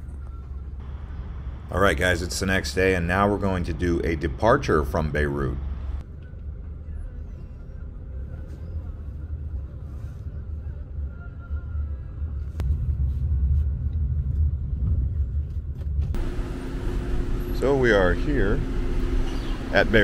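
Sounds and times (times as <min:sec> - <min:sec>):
cars idling and passing: 0:16.2 - 0:20.0.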